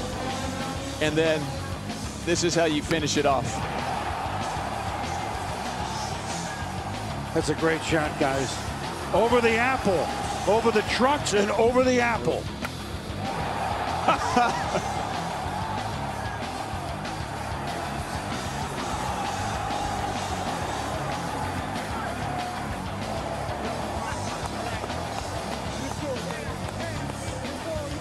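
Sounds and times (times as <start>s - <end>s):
music playing: 0.0s - 28.0s
stadium crowd cheering: 2.4s - 28.0s.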